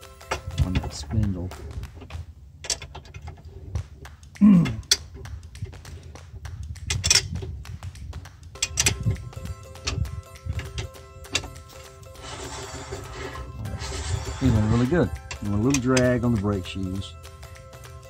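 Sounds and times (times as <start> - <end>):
metal clicks and knocks: 0.0 - 4.0, 4.6 - 7.9, 8.5 - 16.6
background music: 0.0 - 18.0
steady tones: 0.0 - 18.0.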